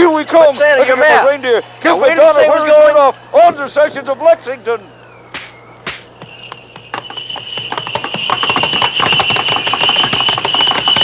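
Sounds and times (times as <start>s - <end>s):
falling whistle: 4.8s - 11.0s
bells ringing: 6.2s - 11.0s.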